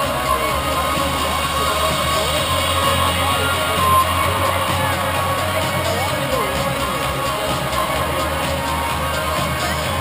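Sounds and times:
amplified concert music: 0.0 - 10.0
crowd shouting and cheering: 0.0 - 10.0.

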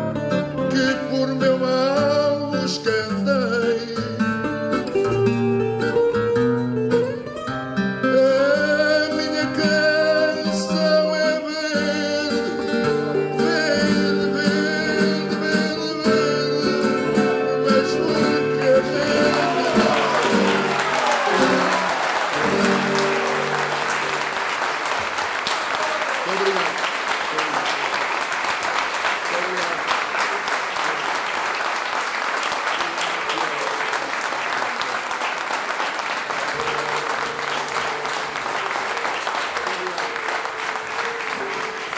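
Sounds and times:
plucked guitar notes: 0.0 - 24.4, 36.5 - 39.1
audience applauding: 8.7 - 41.9.

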